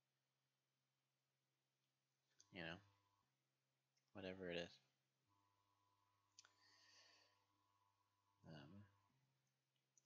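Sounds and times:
man speaking a word: 8.5s - 8.9s.

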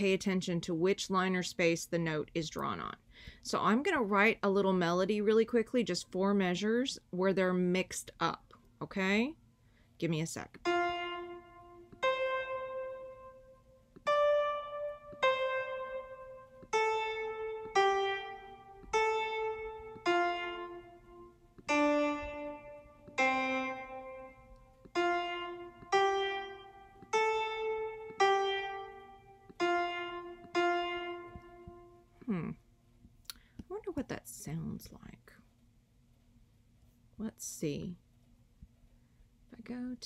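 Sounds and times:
single piano notes: 10.6s - 32.3s.

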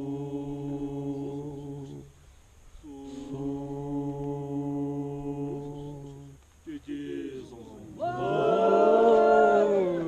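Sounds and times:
men chanting on a held note: 2.9s - 10.0s.

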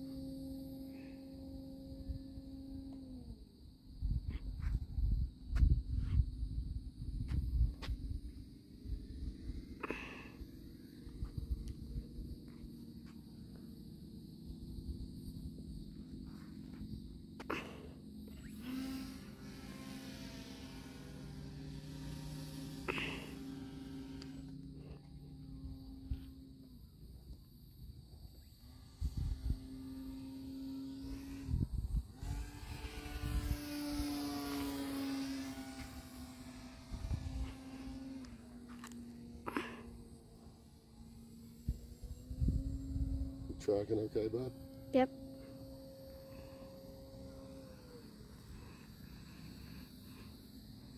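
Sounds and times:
electric motor and propeller drone: 0.0s - 50.9s
wind rumble on microphone: 1.4s - 9.8s, 11.0s - 12.8s, 27.6s - 39.4s, 40.4s - 47.7s.

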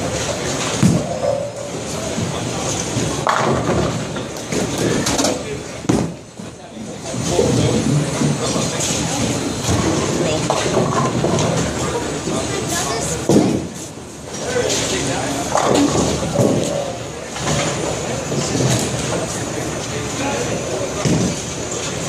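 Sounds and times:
crowd chatter: 0.0s - 22.0s
bowling ball rolling: 0.1s - 6.3s, 7.2s - 12.5s, 14.4s - 19.4s.

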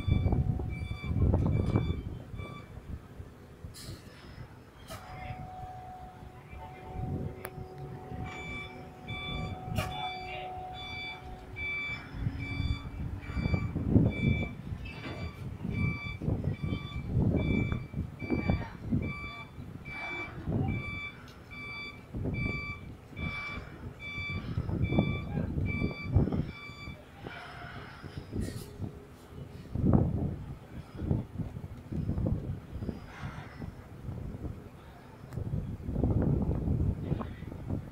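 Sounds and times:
high warning beeps: 0.0s - 3.0s, 4.8s - 27.0s
low rumbling: 0.0s - 37.9s.

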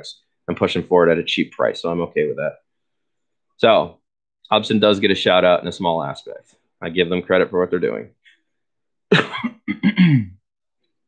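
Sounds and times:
man coughing: 9.1s - 10.4s.

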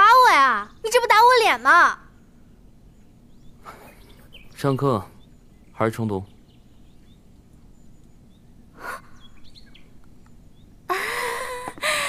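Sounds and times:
faint bird chirps: 0.0s - 11.8s.

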